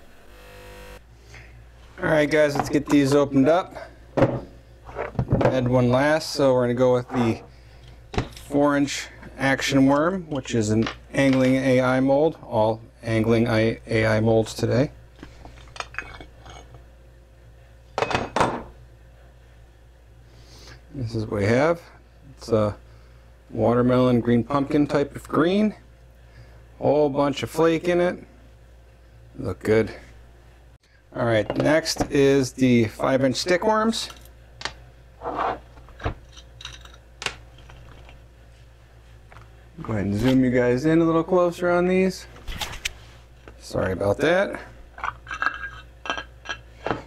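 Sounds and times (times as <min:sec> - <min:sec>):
metal scrape: 0:35.2 - 0:35.7.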